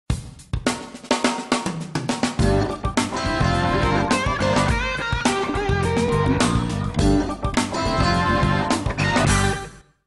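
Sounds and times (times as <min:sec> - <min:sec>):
drum kit snare and bass hits: 0:00.1 - 0:09.6.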